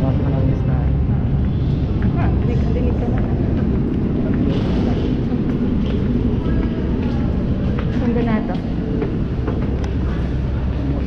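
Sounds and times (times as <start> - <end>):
metro station rumble: 0.0 - 11.0.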